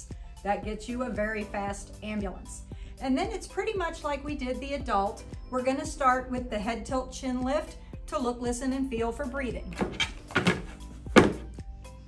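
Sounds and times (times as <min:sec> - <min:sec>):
quiet background music: 0:00.0 - 0:12.0
manikin thunking on tabletop: 0:09.8 - 0:11.5.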